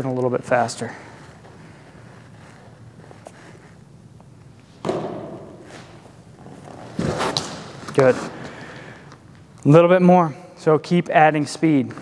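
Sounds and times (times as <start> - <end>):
thrown baseball thud: 4.8 - 6.0
feet landing thud: 4.8 - 8.6.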